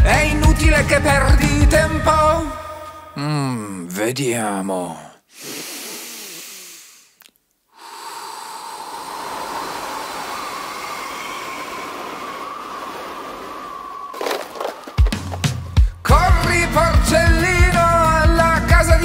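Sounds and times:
long breath drawn in: 5.3 - 15.0
blowing wind with faint whistle: 8.6 - 15.8
house collapsing crash: 14.0 - 15.8.

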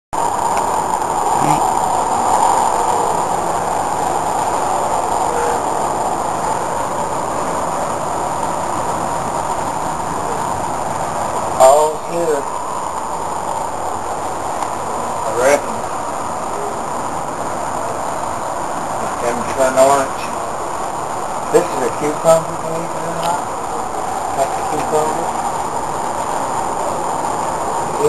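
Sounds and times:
outdoor rushing noise: 0.2 - 28.0
short vocal sound: 1.4 - 1.8.

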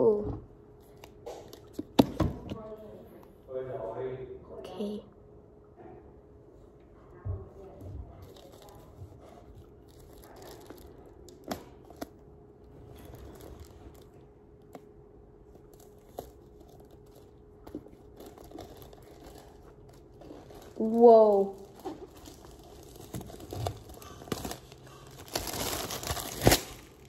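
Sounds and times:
plastic wrap tearing and crinkling: 8.2 - 12.2, 12.8 - 14.8, 15.6 - 27.0.

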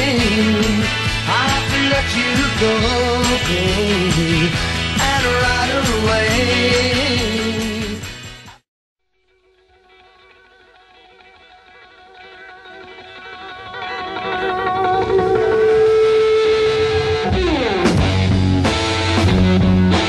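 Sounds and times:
rock band with drums and bass: 0.0 - 8.6, 10.8 - 20.0
wavering electric guitar note: 11.6 - 20.0.

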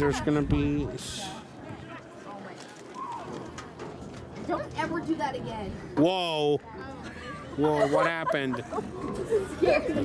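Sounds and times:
distant voices of players and spectators: 0.0 - 10.0.

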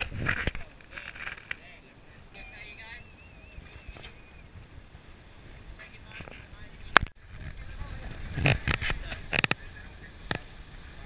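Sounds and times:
wind: 0.0 - 11.0
voices: 0.4 - 4.7, 5.6 - 11.0
faint warbling whistle-like tone: 2.3 - 4.5.

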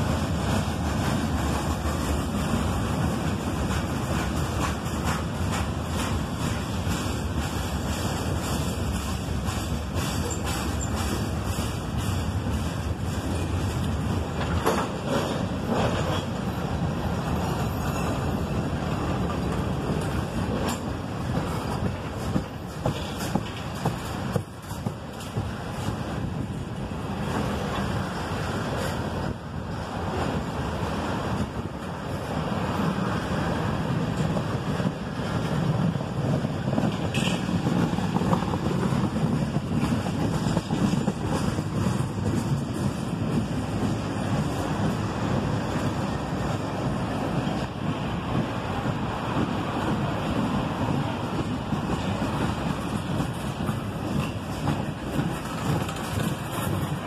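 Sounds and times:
train wheels rumbling on rails: 0.0 - 57.0
clicks and clanks: 36.8 - 37.6.

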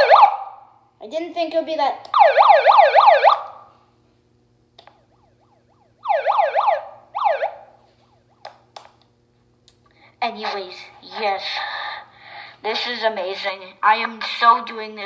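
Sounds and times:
megaphone siren yelps: 2.2 - 3.5, 6.0 - 7.7.

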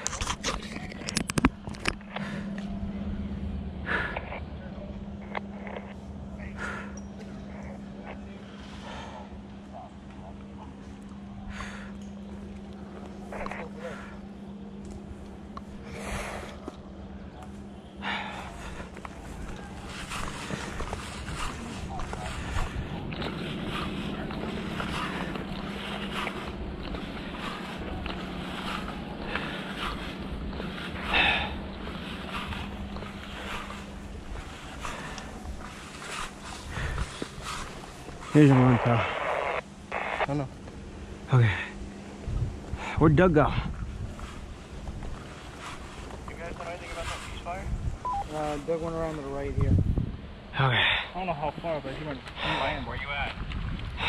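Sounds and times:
steady low hum: 0.0 - 54.0
clothing and gear rustling: 12.1 - 40.1, 43.7 - 49.4.

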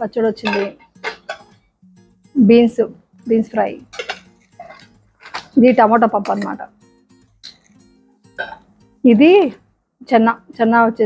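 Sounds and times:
woman speaking: 0.0 - 0.8, 2.4 - 3.9, 5.6 - 6.7, 9.0 - 11.0
quiet background music: 0.0 - 11.0
metal lids clinking: 0.3 - 1.6, 3.8 - 6.7.

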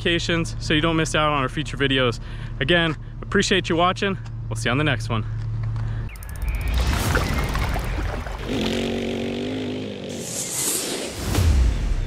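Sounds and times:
buzzing engine-like tone: 6.1 - 10.7.

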